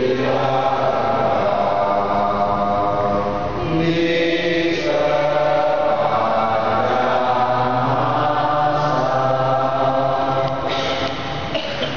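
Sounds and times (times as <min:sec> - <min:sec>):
congregation singing a hymn: 0:00.0 - 0:11.4.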